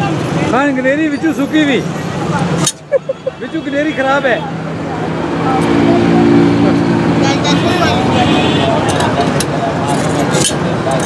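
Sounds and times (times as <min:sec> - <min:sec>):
voices: 0:00.0 - 0:11.0
vehicle engine droning: 0:04.4 - 0:11.0.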